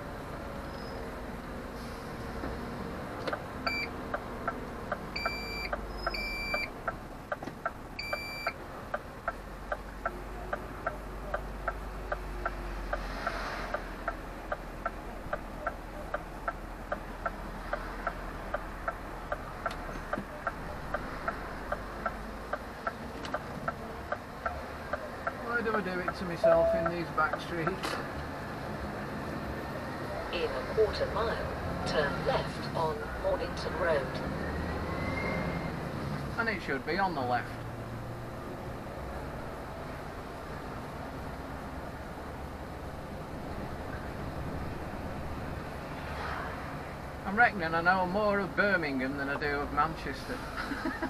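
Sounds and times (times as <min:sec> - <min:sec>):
turn indicator ticking: 0:03.2 - 0:13.0, 0:13.7 - 0:27.8
short high beeps: 0:05.2 - 0:06.7, 0:08.0 - 0:08.5, 0:26.4 - 0:26.9.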